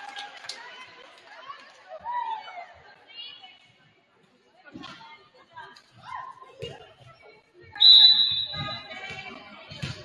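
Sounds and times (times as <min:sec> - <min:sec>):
referee's whistle blast: 0:07.8 - 0:08.9.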